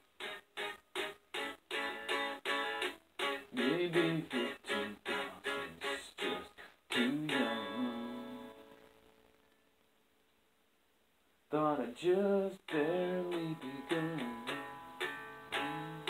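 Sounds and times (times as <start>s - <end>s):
guitar strumming: 0.0s - 9.1s, 12.7s - 16.0s.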